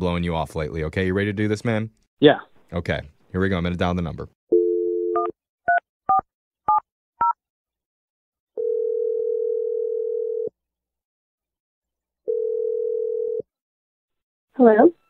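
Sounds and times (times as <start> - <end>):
telephone ringback tone: 8.6 - 10.5, 12.3 - 13.4.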